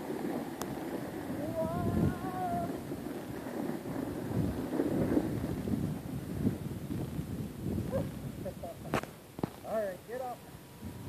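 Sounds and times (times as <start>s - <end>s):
snow shovel scraping on snow: 0.0s - 6.6s
footsteps crunching in snow: 0.0s - 7.2s.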